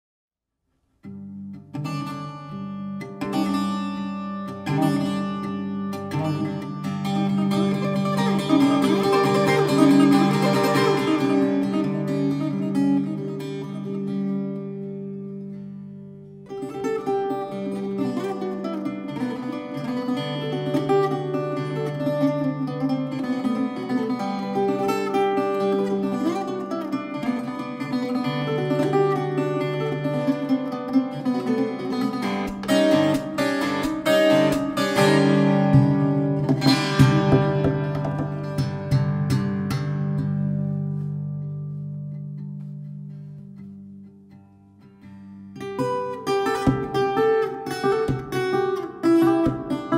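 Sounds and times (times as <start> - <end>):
plucked viola melody: 1.4 - 43.4, 45.5 - 49.9.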